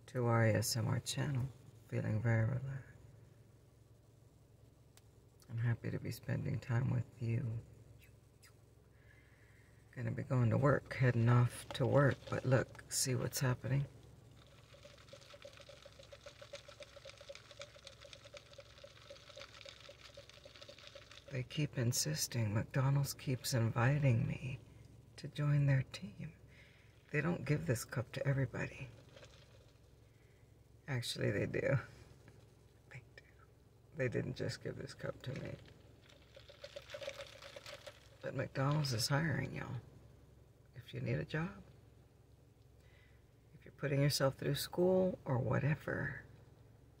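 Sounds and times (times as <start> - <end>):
faint pulsing hum: 0.0 - 47.0
straw squeaking and gurgling: 11.0 - 21.6, 28.8 - 30.1, 35.0 - 39.0
faint ticks: 14.0 - 21.4, 35.3 - 38.8.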